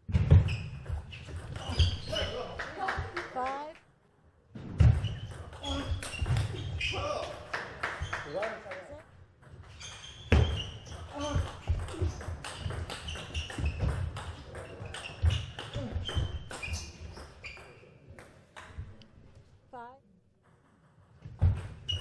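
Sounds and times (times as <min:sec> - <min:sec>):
shoes squeaking on floor: 0:00.1 - 0:02.9, 0:04.8 - 0:18.2, 0:21.4 - 0:22.0.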